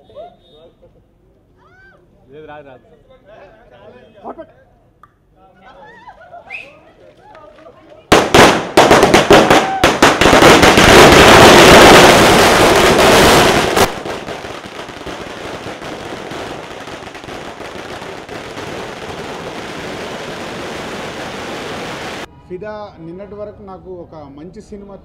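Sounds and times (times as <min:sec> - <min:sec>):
firecrackers banging and crackling: 0:07.4 - 0:22.3.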